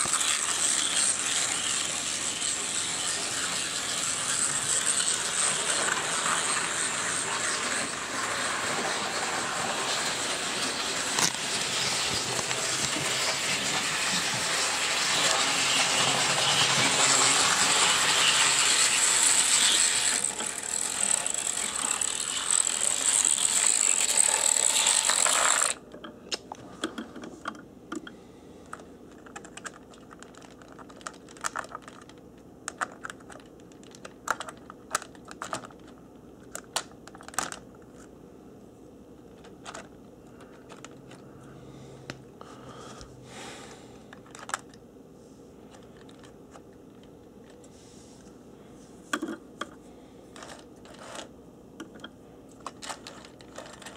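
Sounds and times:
model train motor whirring: 0.0s - 25.8s.

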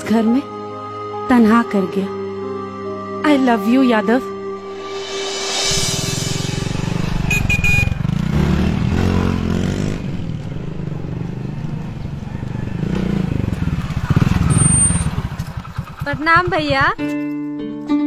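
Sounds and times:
motorcycle engine running: 5.6s - 17.3s.

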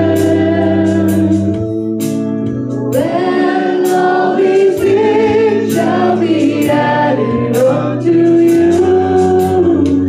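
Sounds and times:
group of voices singing: 0.0s - 1.6s, 3.0s - 10.0s
keyboard or organ chords: 0.0s - 10.0s
steady beat: 0.1s - 9.5s.

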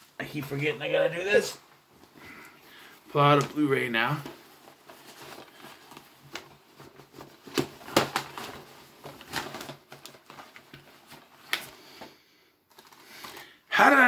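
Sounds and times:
rustling: 1.9s - 13.6s
plastic cases clacking: 4.2s - 11.8s.

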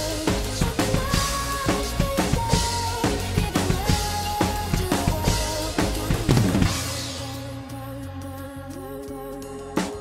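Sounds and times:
acoustic drum kit played hard: 0.0s - 10.0s.

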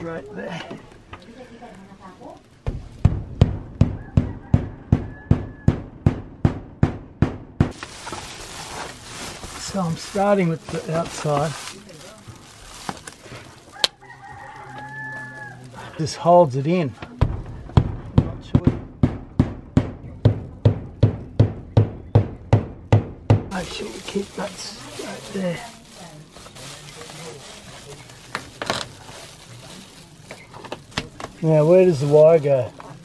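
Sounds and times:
quiet talk: 0.0s - 2.6s, 9.6s - 18.8s, 23.5s - 33.0s
insulation pressed against metal roof: 2.4s - 8.9s
rooster crowing: 3.8s - 5.8s, 13.7s - 16.0s.

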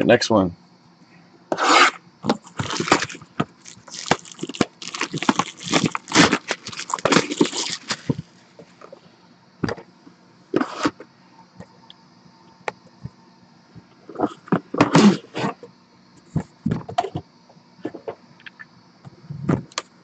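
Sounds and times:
plastic wrap crinkling: 2.4s - 8.2s.

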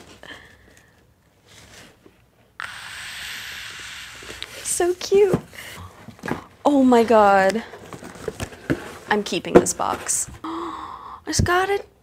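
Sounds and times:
cardboard box handling: 5.1s - 10.3s.

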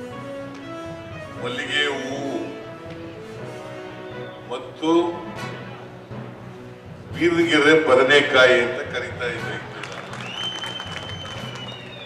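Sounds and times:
high steady whistle: 3.9s - 4.6s, 10.1s - 12.0s
audience applauding: 9.4s - 12.0s.

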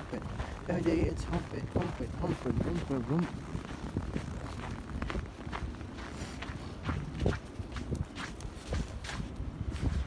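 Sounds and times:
footsteps on snow: 0.0s - 10.0s.

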